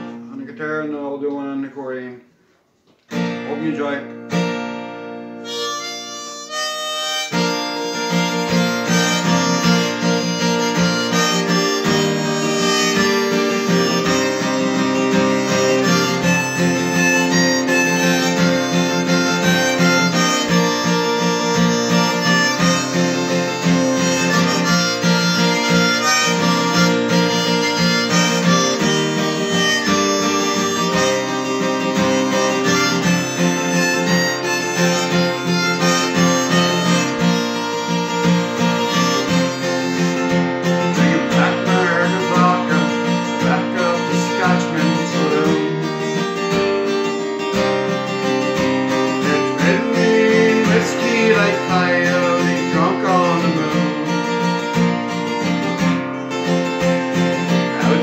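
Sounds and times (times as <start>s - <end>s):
acoustic guitar strumming: 0.0s - 58.0s
harmonica playing: 5.3s - 58.0s.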